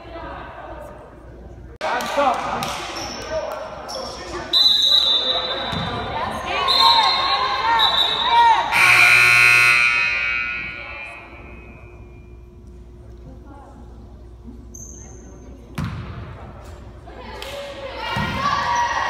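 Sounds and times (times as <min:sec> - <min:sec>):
voices: 0:00.0 - 0:12.4
referee's whistle blasts: 0:04.5 - 0:05.9, 0:06.5 - 0:12.2
scoreboard horn: 0:08.7 - 0:11.4.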